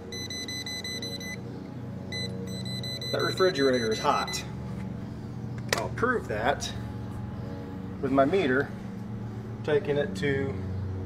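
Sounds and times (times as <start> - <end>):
voltage tester high-pitched beep: 0.1 - 1.4, 2.1 - 4.4.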